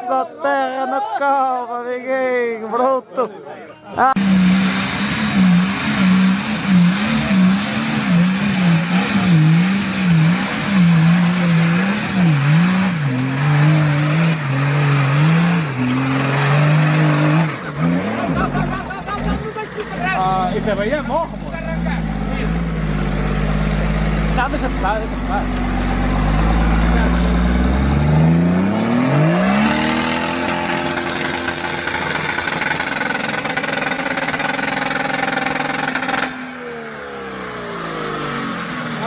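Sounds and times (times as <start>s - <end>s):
engine revving hard: 4.2s - 39.0s
tyres spinning in dirt: 29.6s - 36.4s.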